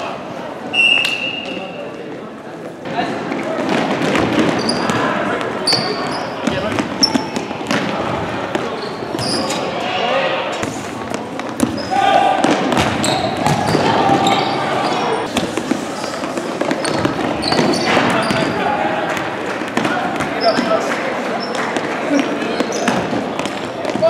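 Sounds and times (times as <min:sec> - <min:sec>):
sneakers squeaking: 0:00.7 - 0:02.2, 0:03.8 - 0:24.0
voices shouting: 0:11.8 - 0:15.3.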